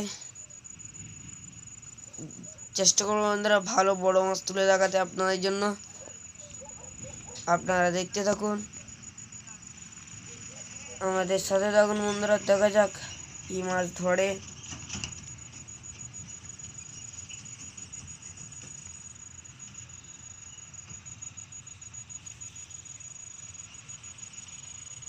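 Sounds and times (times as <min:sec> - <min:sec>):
crickets chirring: 0:00.0 - 0:25.0.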